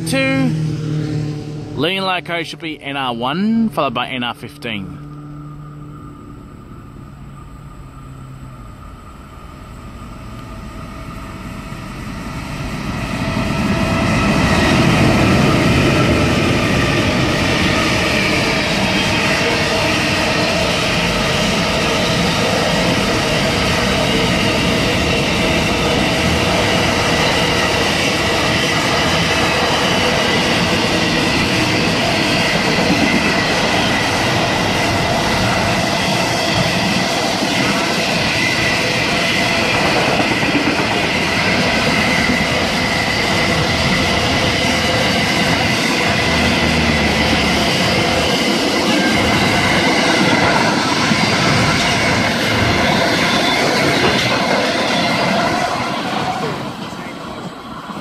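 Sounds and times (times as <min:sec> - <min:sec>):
freight train wheels rumbling on rail: 0:00.0 - 0:58.0
high-pitched ringing from wheels: 0:05.0 - 0:58.0
clickety-clack over rail joints: 0:13.2 - 0:58.0.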